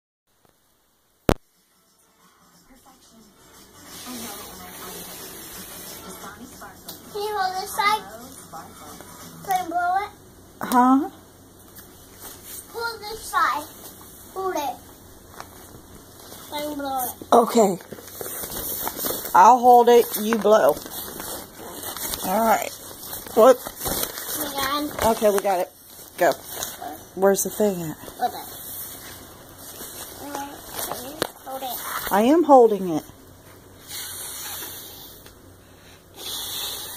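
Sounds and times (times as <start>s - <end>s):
child's voice: 7.1s - 8.3s, 9.4s - 10.2s, 12.7s - 13.7s, 14.4s - 14.8s, 16.5s - 17.2s, 24.4s - 25.0s, 28.2s - 28.6s, 30.2s - 32.0s
plastic bag rustling: 15.3s - 32.4s
child blowing into inflatable: 33.8s - 35.2s, 36.2s - 36.9s.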